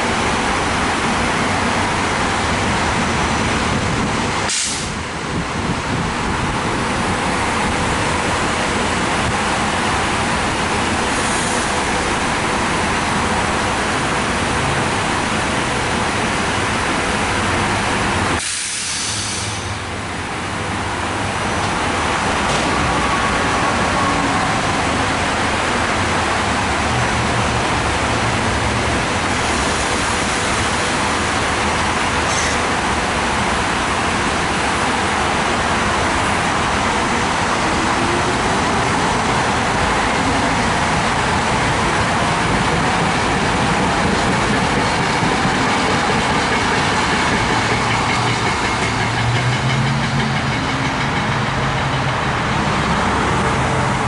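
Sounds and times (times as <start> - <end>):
train rolling past: 0.0 - 54.0.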